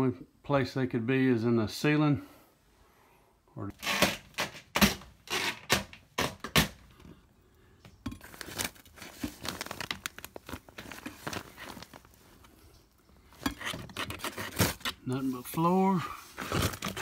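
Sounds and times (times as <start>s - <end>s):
insulation paper crinkling: 8.2s - 13.0s, 13.6s - 17.0s.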